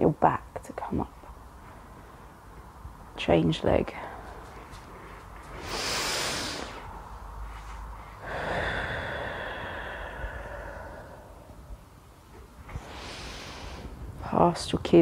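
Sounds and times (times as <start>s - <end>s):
person breathing: 5.5s - 11.8s, 12.7s - 14.0s.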